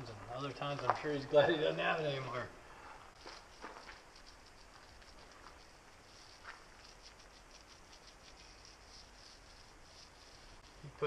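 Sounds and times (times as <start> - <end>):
paintbrush strokes on wood: 0.8 - 11.0.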